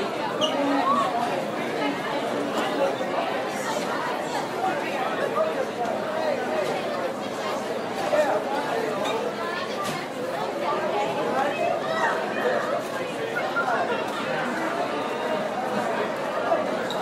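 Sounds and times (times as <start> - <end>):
many voices chattering: 0.0 - 17.0.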